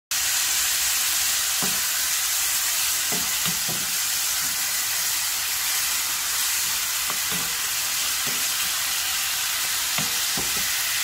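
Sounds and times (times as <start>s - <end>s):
meat sizzling in a frying pan: 0.1s - 11.0s.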